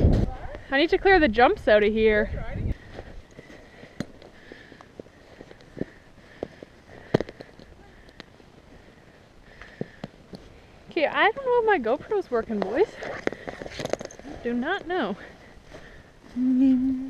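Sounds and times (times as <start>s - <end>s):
stirrup buckle clicks and knocks: 12.6s - 14.3s.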